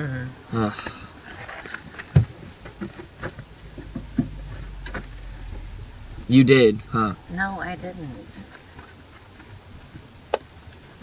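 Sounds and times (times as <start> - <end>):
low steady rumble: 0.0 - 11.0
dull thump: 2.1 - 7.2.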